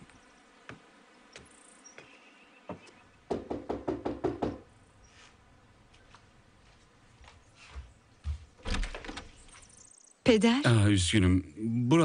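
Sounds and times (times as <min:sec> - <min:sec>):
knocking on door: 0:03.3 - 0:04.7
light footsteps: 0:05.1 - 0:09.6.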